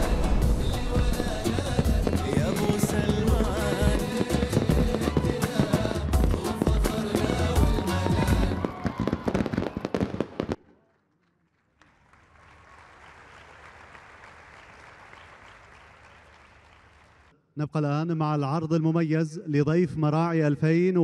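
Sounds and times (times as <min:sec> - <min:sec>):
show music with heavy beat: 0:00.0 - 0:08.6
audience applauding: 0:11.6 - 0:17.3.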